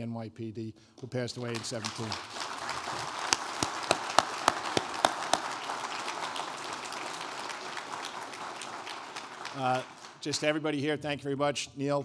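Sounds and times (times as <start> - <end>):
sharp close claps: 1.0 - 10.5
audience applauding: 1.4 - 10.6.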